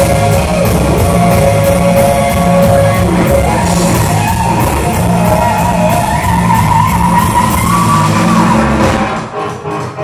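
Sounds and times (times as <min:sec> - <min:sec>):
bass guitar: 0:00.0 - 0:10.0
electric guitar lead notes: 0:00.0 - 0:10.0
steady drum beat: 0:00.0 - 0:10.0.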